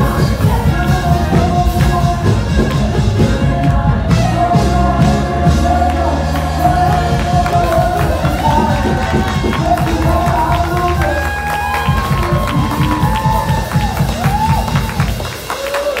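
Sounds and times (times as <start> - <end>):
voices singing: 0.0 - 14.1
band beat and bass: 0.0 - 16.0.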